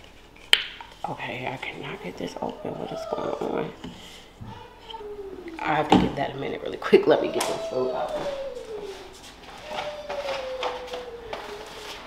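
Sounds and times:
thin tone sinking in pitch: 0:05.0 - 0:05.9.

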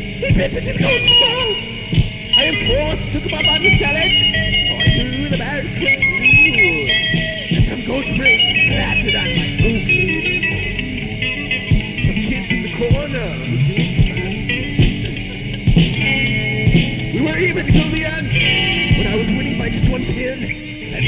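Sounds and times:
electric guitar bending notes: 0:00.0 - 0:21.0
metal band playing: 0:00.0 - 0:21.0.

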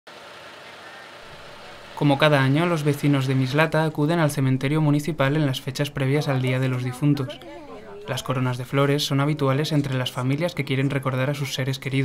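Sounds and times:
vehicle engine running: 0:00.1 - 0:06.9.

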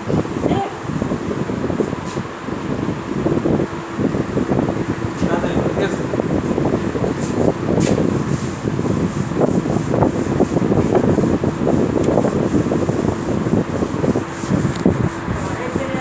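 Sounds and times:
duster rubbing on chalkboard: 0:06.5 - 0:16.0.

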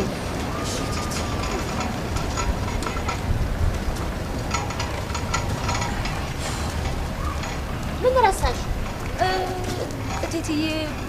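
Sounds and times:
street background rumble: 0:00.0 - 0:11.0.

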